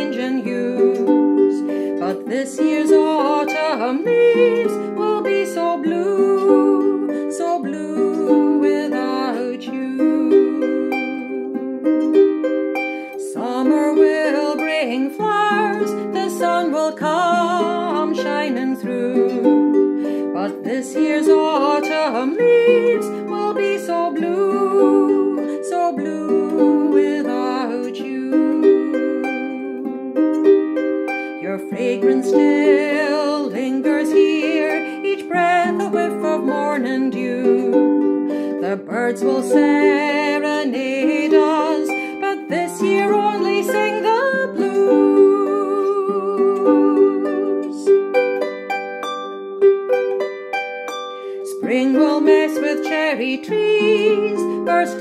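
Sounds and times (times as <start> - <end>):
woman singing slow song: 0.0 - 12.0, 13.1 - 30.2, 31.3 - 48.0, 51.3 - 55.0
plucked harp notes: 0.0 - 55.0.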